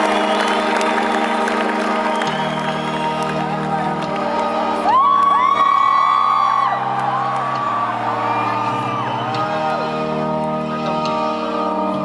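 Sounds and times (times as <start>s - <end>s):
crowd whooping: 0.0s - 4.0s, 4.6s - 10.2s
band playing slow organ chords: 0.0s - 12.0s.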